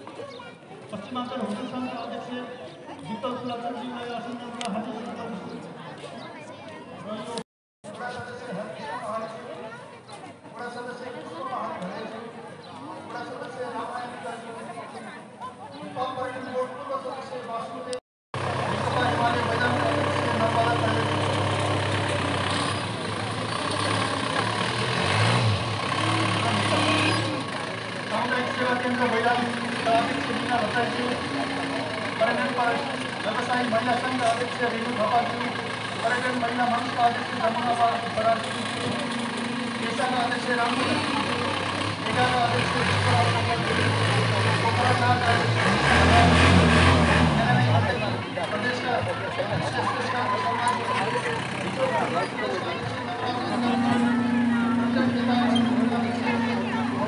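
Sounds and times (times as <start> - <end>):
crowd chatter: 0.0 - 57.0
vehicle engine running: 18.4 - 57.0.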